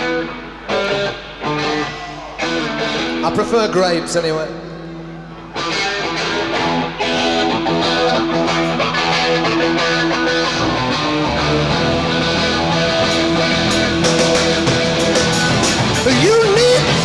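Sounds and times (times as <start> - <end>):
loud electric guitar: 0.0 - 17.0.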